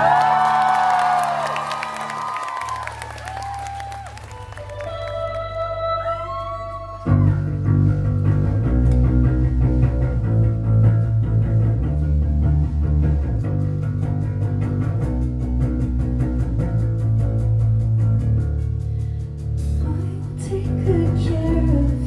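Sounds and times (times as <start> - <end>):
bass guitar: 0.0 - 22.0
pitch-bending electric guitar: 2.7 - 19.1
drums: 6.8 - 22.0.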